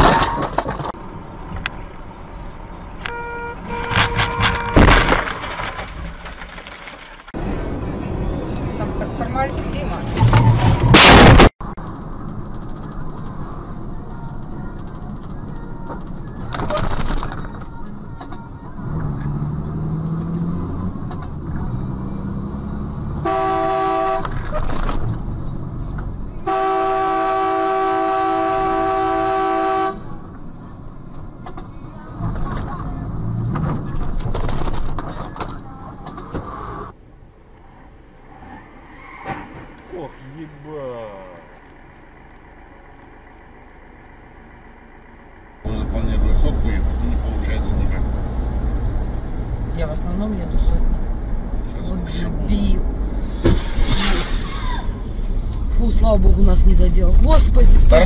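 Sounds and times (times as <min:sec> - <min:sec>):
road and traffic noise: 0:00.0 - 0:58.0
vehicle horn blasts: 0:03.0 - 0:05.1, 0:23.2 - 0:24.5, 0:26.4 - 0:30.2
loud sudden noise: 0:10.6 - 0:11.5.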